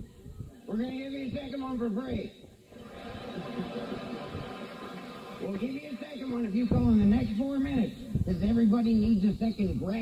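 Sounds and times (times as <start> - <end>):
audience laughing over radio: 2.8 - 6.0.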